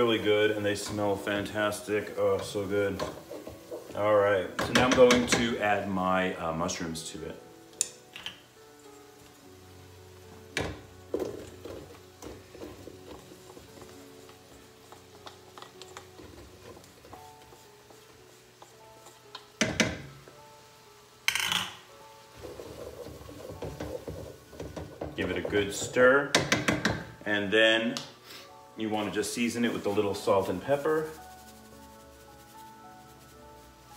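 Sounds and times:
stirring in a pan: 0.0s - 6.5s, 8.8s - 21.2s, 22.0s - 27.2s, 29.0s - 33.9s
soft instrumental music: 0.0s - 33.9s.

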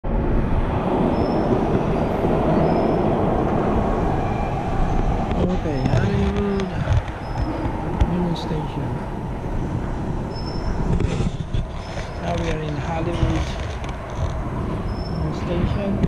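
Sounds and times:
subway station rumble: 0.0s - 11.5s.

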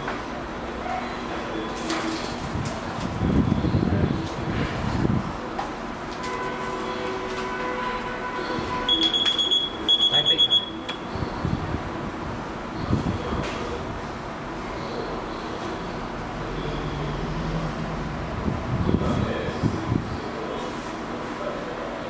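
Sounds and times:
equipment hum: 0.0s - 22.0s
electronic alarm beeping: 8.9s - 11.1s.

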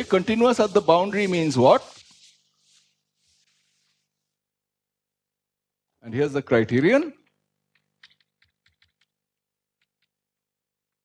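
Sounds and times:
person speaking: 0.0s - 2.2s
chalk tapping on blackboard: 0.0s - 4.3s.

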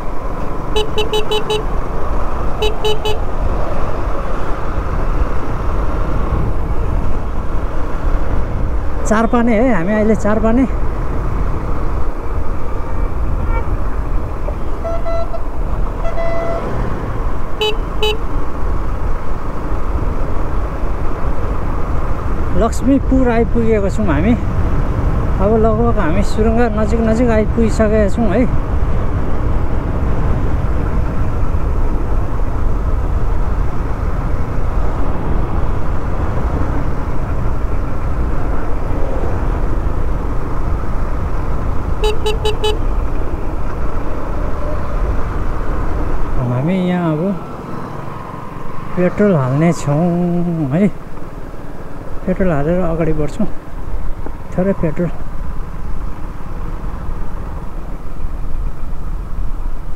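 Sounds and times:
motorcycle engine rumble: 0.0s - 59.9s
wind rushing over microphone: 0.0s - 59.9s
loud horn toots: 0.7s - 1.7s, 2.6s - 3.2s, 13.4s - 13.8s, 14.7s - 16.8s, 17.6s - 18.3s, 42.0s - 42.9s
faint vehicle horn: 0.8s - 1.7s, 2.6s - 3.2s, 13.4s - 13.8s, 14.7s - 16.7s, 42.0s - 42.9s.

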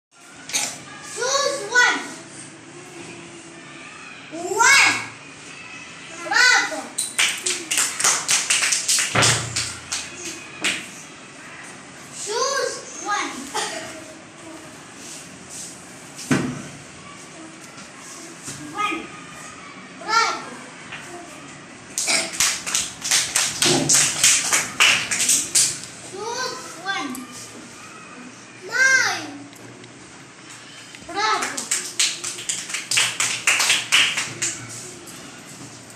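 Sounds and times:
children clapping: 7.0s - 10.9s, 21.9s - 25.9s, 31.2s - 34.8s
child's voice: 26.1s - 29.6s.

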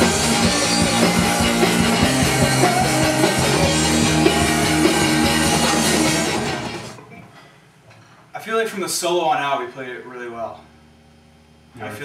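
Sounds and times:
drums ringing: 0.0s - 7.2s
electric guitars ringing: 0.0s - 7.2s.

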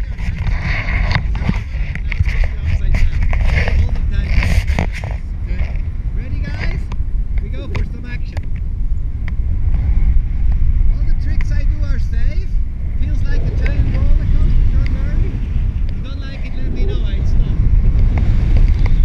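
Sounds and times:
airflow buffeting microphone: 0.0s - 19.0s
voices talking: 5.4s - 8.5s, 10.9s - 17.8s.

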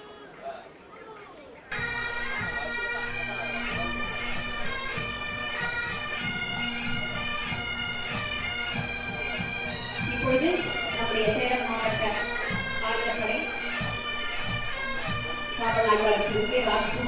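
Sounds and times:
bagpipes melody over drone: 1.7s - 17.0s
drum beats: 1.8s - 17.0s.

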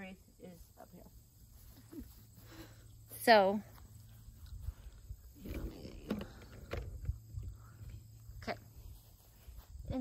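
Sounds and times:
wind rumble on microphone: 4.4s - 8.1s.

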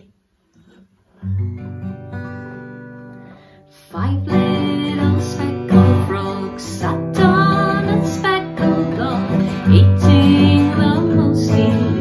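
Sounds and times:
acoustic guitar chords strummed: 1.2s - 12.0s.

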